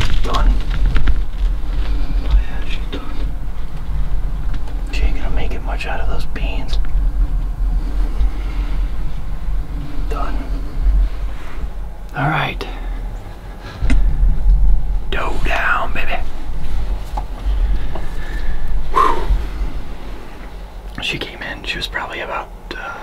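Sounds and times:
man whispering: 0.0s - 0.7s, 1.9s - 3.4s, 4.9s - 6.9s, 9.7s - 11.4s, 12.1s - 13.0s, 15.1s - 16.4s, 20.9s - 23.0s
low rumble: 0.0s - 23.0s.

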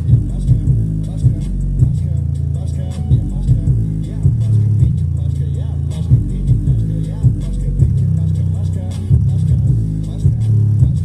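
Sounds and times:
rap music with deep bass: 0.0s - 11.0s.

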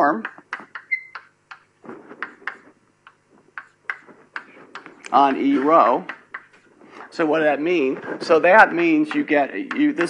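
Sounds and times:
brief high squeak: 0.9s - 1.2s.

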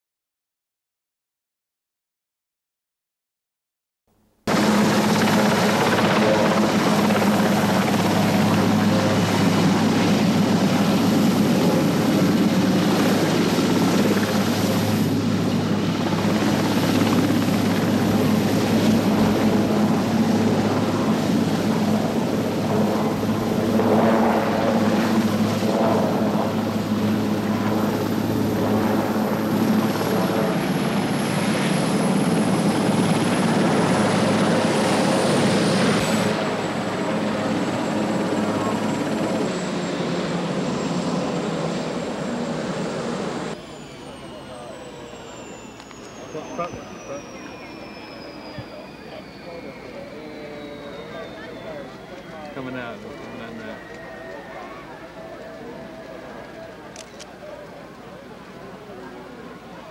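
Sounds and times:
helicopter rotors running: 4.5s - 59.9s.

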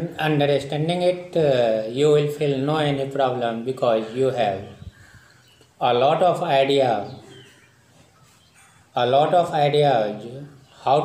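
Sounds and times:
man talking: 0.0s - 4.8s, 5.8s - 7.4s, 9.0s - 11.0s.

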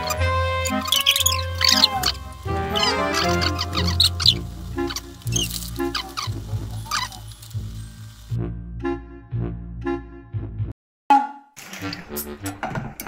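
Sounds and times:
high squeaky chirping glides: 0.0s - 8.3s
background music: 0.0s - 13.0s.

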